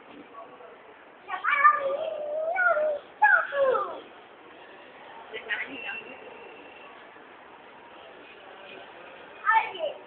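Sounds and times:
child's high-pitched vocal call: 1.3 - 4.1.

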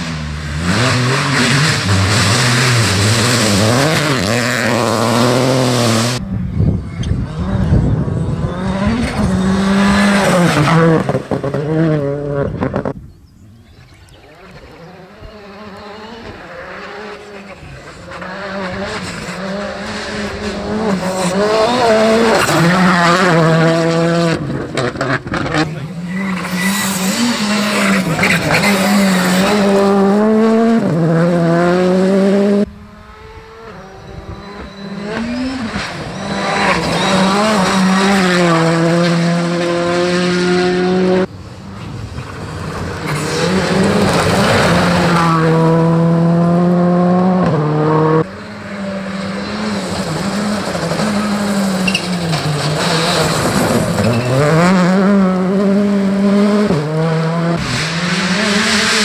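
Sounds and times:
rally cars accelerating on gravel: 0.0 - 59.0.

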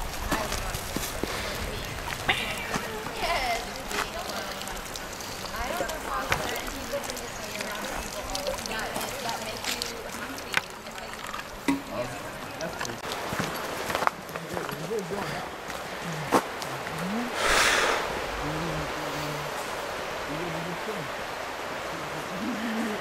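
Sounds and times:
river water rushing: 0.0 - 23.0
short hissing rush: 17.3 - 18.5.

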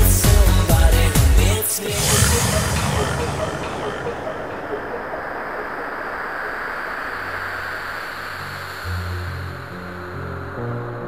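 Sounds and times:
deep synth bass notes: 0.1 - 5.8
filtered white noise wash: 2.0 - 11.0.

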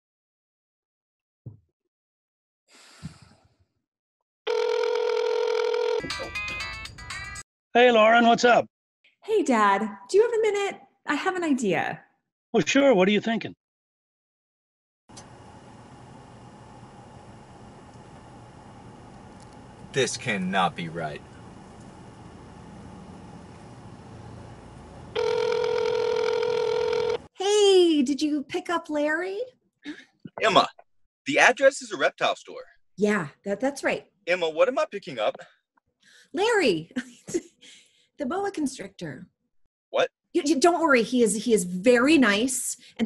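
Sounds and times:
telephone call tone: 4.5 - 6.4, 25.1 - 27.3
phone ringtone: 4.5 - 7.3, 25.2 - 27.3.

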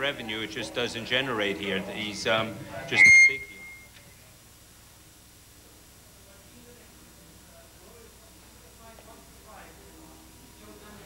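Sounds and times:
speech: 0.0 - 3.5, 5.7 - 11.0
faint hum: 0.0 - 11.0
electronic beep: 2.9 - 3.9.

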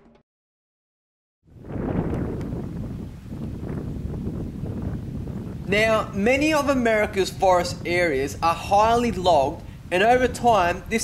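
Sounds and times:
wind rumbling on microphone: 1.4 - 11.0.

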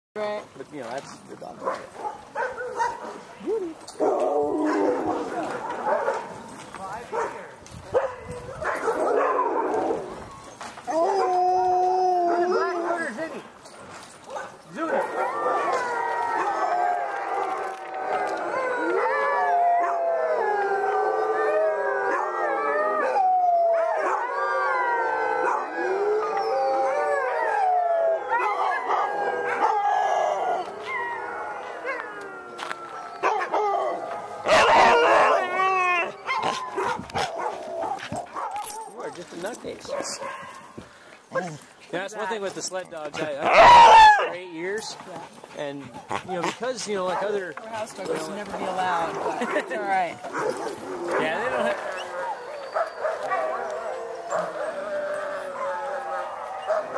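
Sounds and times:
dogs barking and yipping: 0.8 - 44.9, 45.6 - 56.9
sled dogs howling together: 2.4 - 13.4, 14.7 - 40.4, 43.2 - 44.9, 46.3 - 56.9.

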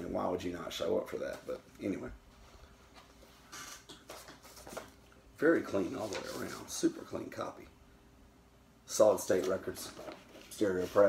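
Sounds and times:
cardboard record jacket rustling: 5.6 - 6.8, 9.2 - 11.0.

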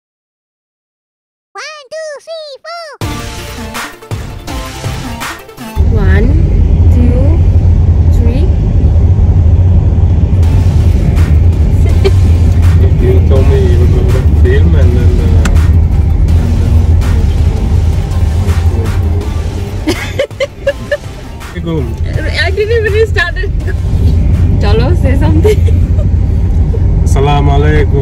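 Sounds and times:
music: 3.0 - 7.4, 10.4 - 26.0
car cabin road and engine rumble: 5.8 - 28.0.

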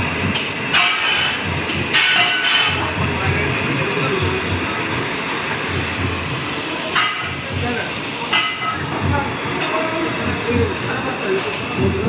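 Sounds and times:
workshop machine rumble: 0.0 - 12.0
machine hiss: 0.7 - 12.0.

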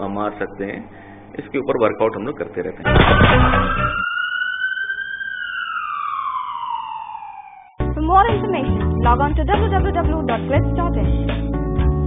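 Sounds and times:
loud hit with noise rush: 2.9 - 4.0
siren wail: 2.9 - 7.8.

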